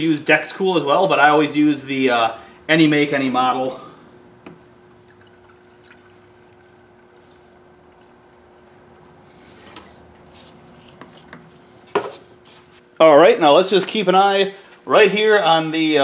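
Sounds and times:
liquid pouring into a tank: 5.0s - 8.2s.

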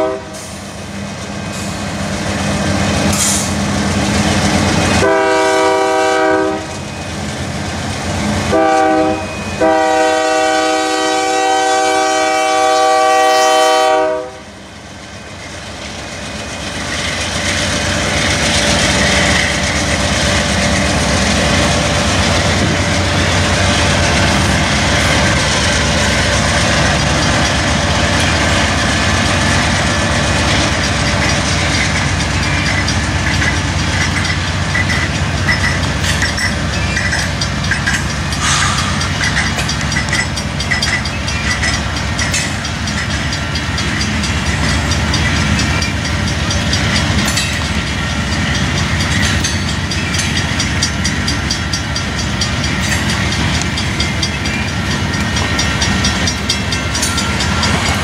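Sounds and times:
locomotive air horn blasts: 0.0s - 0.6s, 5.0s - 6.8s, 8.5s - 14.5s
train wheels clicking over rail joints: 0.0s - 13.1s, 14.0s - 58.0s.

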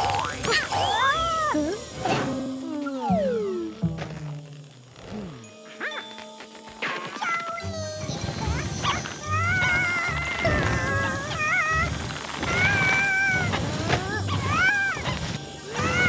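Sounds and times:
high-pitched cartoon vocal squeaks: 0.0s - 1.8s, 7.0s - 16.0s
background music: 0.0s - 16.0s.

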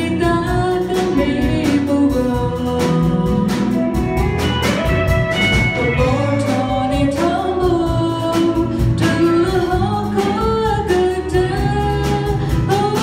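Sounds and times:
drum beats: 0.0s - 13.0s
live band playing: 0.0s - 13.0s.

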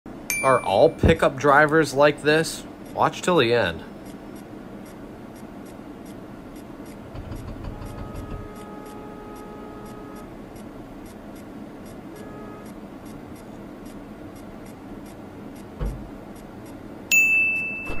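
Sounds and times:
bright ding: 0.3s - 1.2s, 17.1s - 18.0s
faint ticking: 2.8s - 3.0s, 4.0s - 16.8s
car cabin noise: 6.0s - 16.8s
thump: 15.8s - 16.1s.

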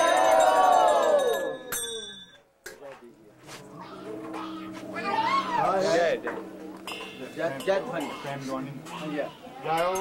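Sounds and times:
steady low hum: 3.2s - 8.8s
voices in a crowded room: 3.5s - 10.0s
high wavering voice crying out: 3.8s - 6.0s.

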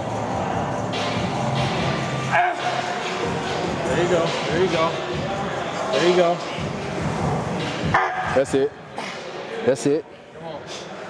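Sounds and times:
background music: 0.0s - 9.9s.

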